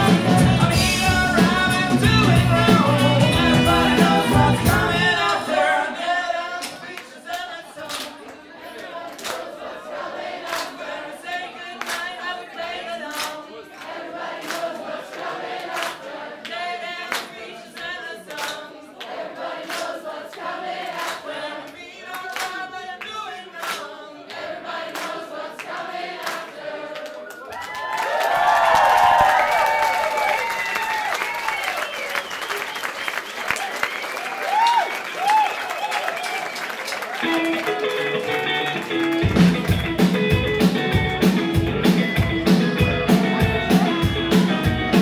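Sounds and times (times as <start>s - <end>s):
voices singing without instruments: 0.0s - 27.5s
audience whistling: 27.2s - 40.6s
audience cheering and applause: 27.2s - 45.0s
hand claps in time: 29.1s - 41.4s.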